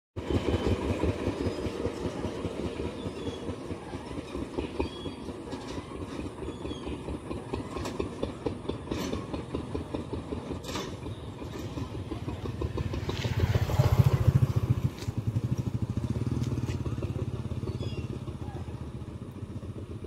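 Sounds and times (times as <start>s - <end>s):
train rumbling past: 0.2s - 20.0s.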